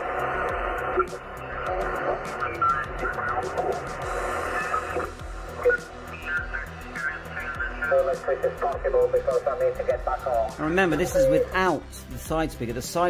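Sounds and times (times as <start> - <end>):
radio noise: 0.0 - 11.8
radio tones: 0.0 - 11.8
garbled radio voices: 0.8 - 12.1.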